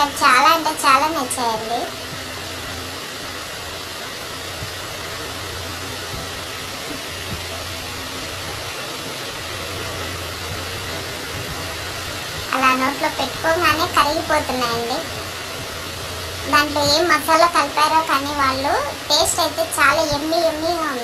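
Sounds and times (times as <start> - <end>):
electric fan whirring: 0.0 - 21.0.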